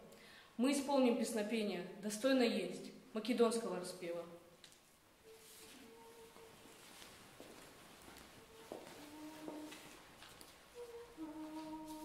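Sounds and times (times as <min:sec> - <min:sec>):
children's choir humming notes: 0:05.2 - 0:07.5, 0:08.2 - 0:12.0.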